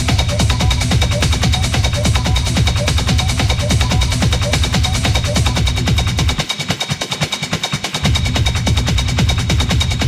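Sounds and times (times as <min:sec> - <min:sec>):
techno over club sound system: 0:00.0 - 0:10.0.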